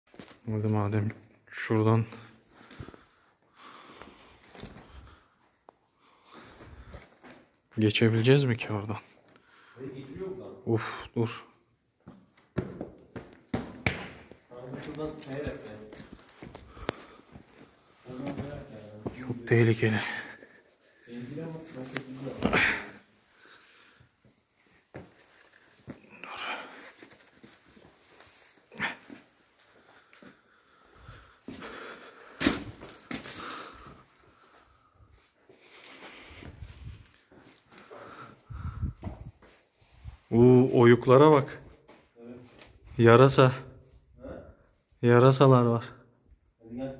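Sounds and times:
person breathing: 2.1s - 7.5s, 9.4s - 10.0s, 15.9s - 18.4s, 22.4s - 24.3s, 24.9s - 27.6s, 28.5s - 40.2s.

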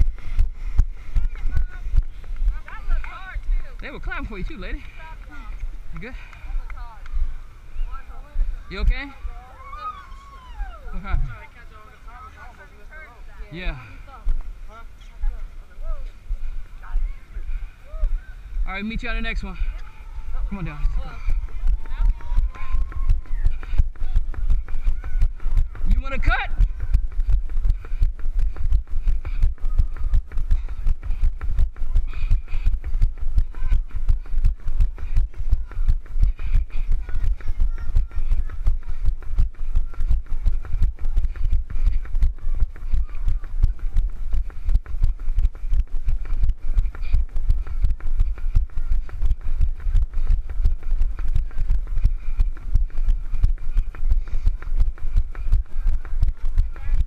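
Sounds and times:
running footsteps thumping: 0.0s - 7.4s, 15.2s - 57.0s.

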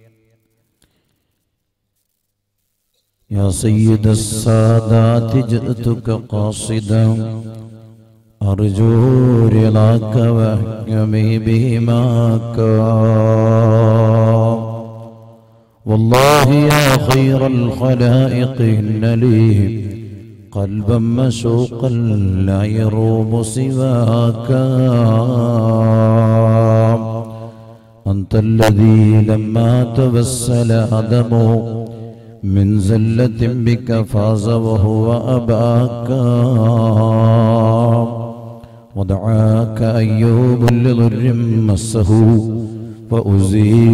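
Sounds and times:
man chanting: 0.0s - 0.6s, 3.2s - 43.9s.

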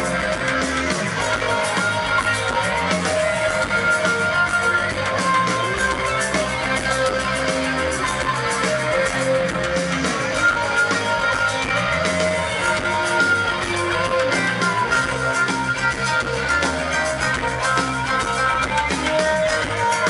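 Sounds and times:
rock band playing: 0.0s - 20.0s.

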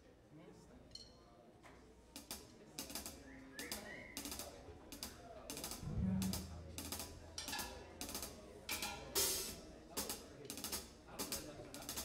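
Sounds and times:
irregular drum kit strikes: 5.5s - 12.0s
low note: 5.8s - 7.4s.

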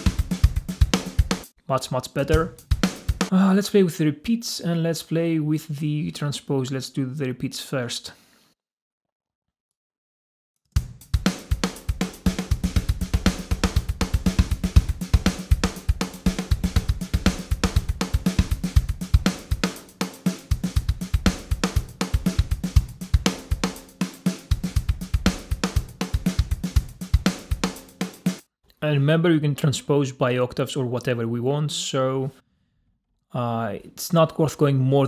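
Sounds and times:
programmed drum beat with repeats: 0.0s - 3.4s, 10.8s - 28.5s.

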